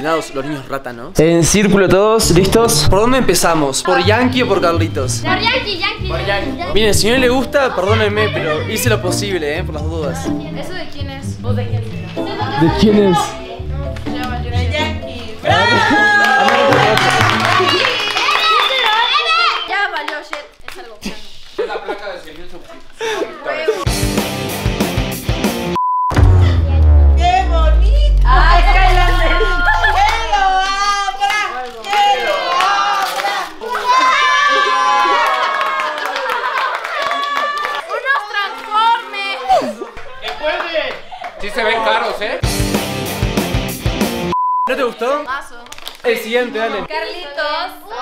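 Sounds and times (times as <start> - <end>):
child's voice: 5.3 - 6.8, 10.4 - 13.6, 17.6 - 21.0, 46.9 - 48.0
music with drum hits: 23.9 - 30.5, 42.4 - 44.3
high-pitched censor bleep: 25.8 - 29.9, 44.3 - 44.7
gift wrapping tearing: 31.1 - 32.3, 45.6 - 46.1.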